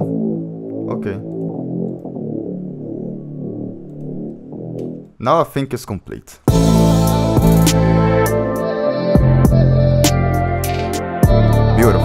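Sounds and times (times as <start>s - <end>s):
long held low synth bass notes: 0.0s - 5.1s.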